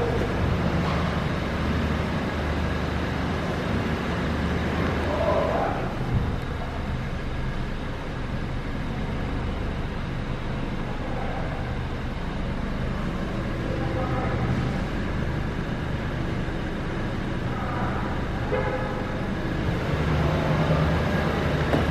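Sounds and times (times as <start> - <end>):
car cabin hum and hiss: 17.5 - 21.9.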